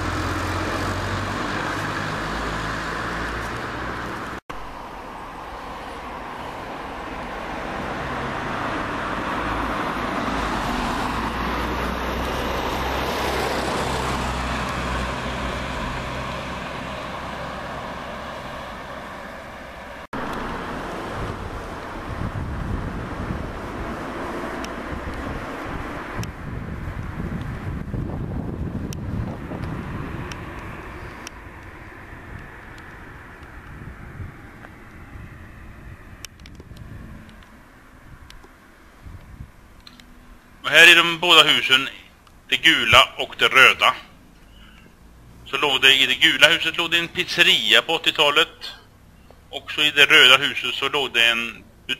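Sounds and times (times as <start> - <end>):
motor vehicle passing: 0.0 - 50.3
wind rumble on microphone: 20.2 - 39.8.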